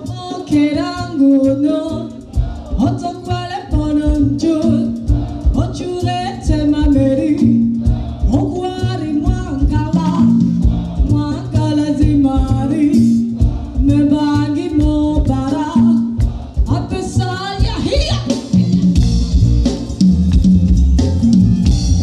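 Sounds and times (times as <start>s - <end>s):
woman singing: 0.0s - 19.1s
bass and percussion beat: 0.0s - 22.0s.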